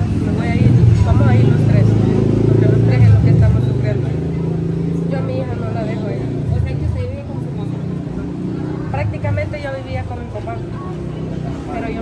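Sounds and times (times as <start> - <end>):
people talking: 0.0 - 12.0
vehicle engine rumbling: 0.0 - 12.0.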